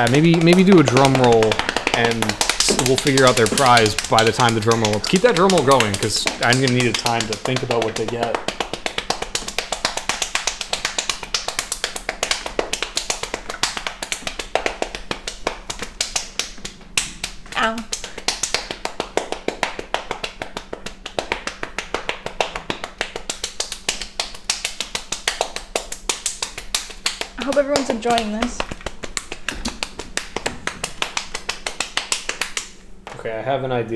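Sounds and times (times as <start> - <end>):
fast drum roll tapping: 0.0 - 32.8.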